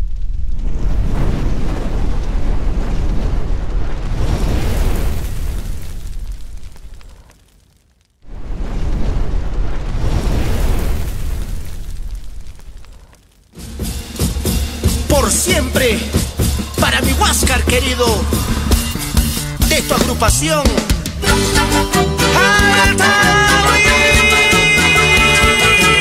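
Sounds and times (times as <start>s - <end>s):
deep fire explosion effects: 0.0s - 25.6s
music: 13.6s - 26.0s.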